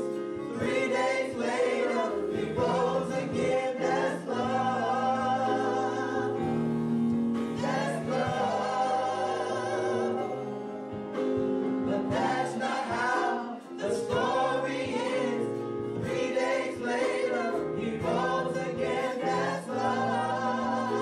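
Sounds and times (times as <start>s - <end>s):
gospel choir singing: 0.0s - 21.0s.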